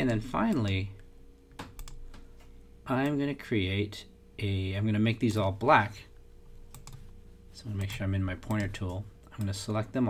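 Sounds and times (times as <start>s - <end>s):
computer mouse clicks: 0.0s - 3.2s, 6.7s - 7.2s
low steady hum: 0.0s - 10.0s.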